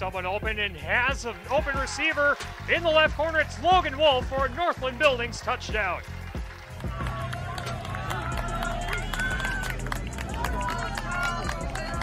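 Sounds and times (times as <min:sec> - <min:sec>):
spectators shouting and cheering: 0:01.0 - 0:12.0.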